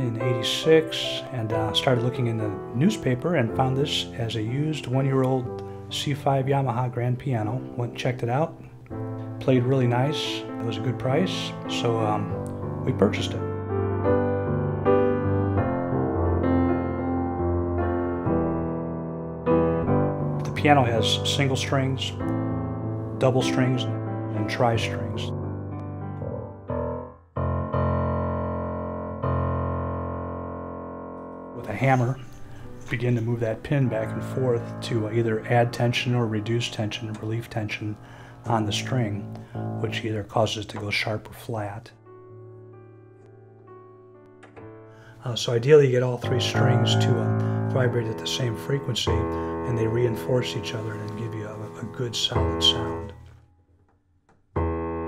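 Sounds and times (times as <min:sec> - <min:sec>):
piano chords ringing: 0:00.0 - 0:53.6, 0:54.6 - 0:55.0.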